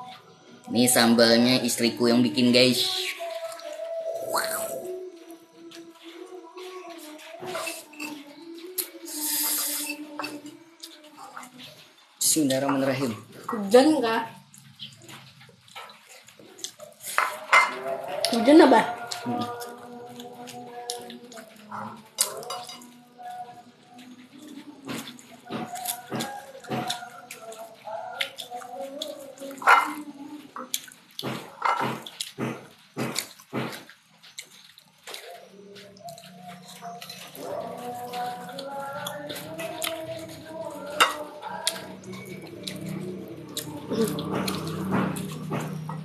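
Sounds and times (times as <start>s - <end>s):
wavering pitched sounds: 1.9s - 5.4s
lip smacks and chewing: 24.4s - 46.0s.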